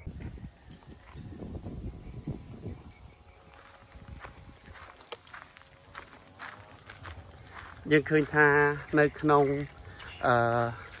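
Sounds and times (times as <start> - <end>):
footsteps on gravel: 3.1 - 11.0.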